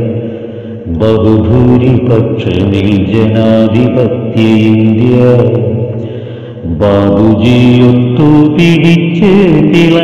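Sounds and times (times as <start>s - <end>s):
person singing in chant-like style: 0.0s - 10.0s.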